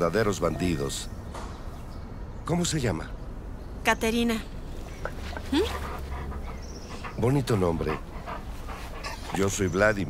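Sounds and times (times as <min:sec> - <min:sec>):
low steady background rumble: 0:00.0 - 0:10.0
dog whimpering: 0:05.3 - 0:09.8.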